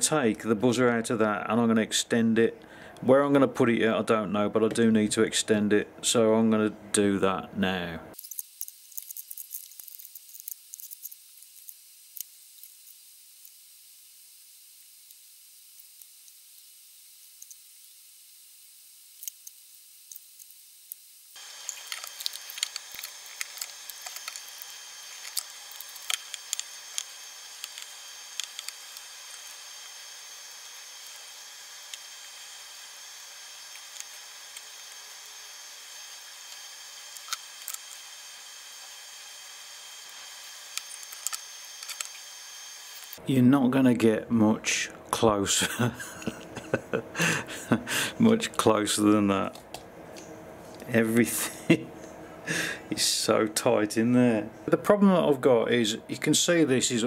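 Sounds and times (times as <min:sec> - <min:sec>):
steady high hiss: 0:08.1 - 0:49.6.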